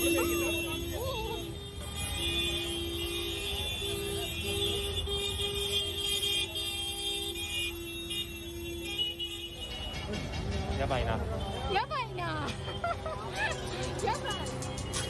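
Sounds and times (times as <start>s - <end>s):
car horn blasts: 0.0s - 10.1s
street traffic rumble: 0.0s - 15.0s.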